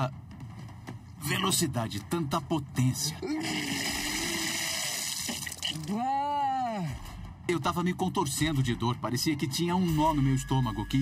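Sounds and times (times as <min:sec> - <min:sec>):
man retching groan: 0:03.2 - 0:07.0
man vomiting: 0:03.2 - 0:07.0
water gushing and splashing: 0:03.4 - 0:05.8.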